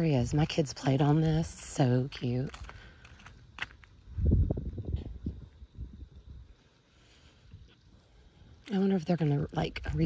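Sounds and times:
wind buffeting microphone: 0.0 - 6.6.

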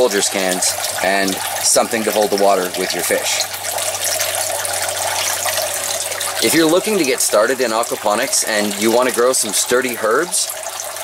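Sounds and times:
water streams splashing into tank: 0.0 - 11.0.

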